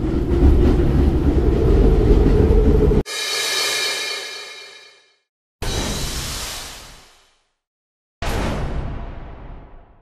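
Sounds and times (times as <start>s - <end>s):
bright metallic shimmer: 3.1s - 5.0s.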